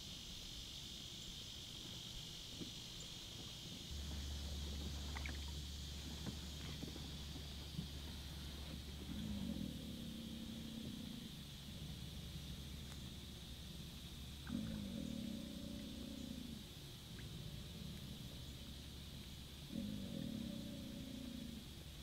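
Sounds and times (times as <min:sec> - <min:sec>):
alligator growling: 0:03.9 - 0:21.9.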